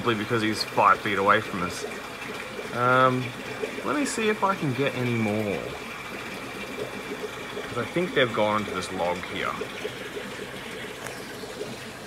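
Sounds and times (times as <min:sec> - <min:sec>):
aquarium water running and trickling: 0:00.0 - 0:12.0.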